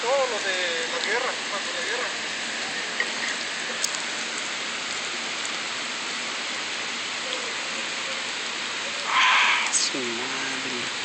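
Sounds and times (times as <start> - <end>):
steady rain falling: 0.0 - 11.0.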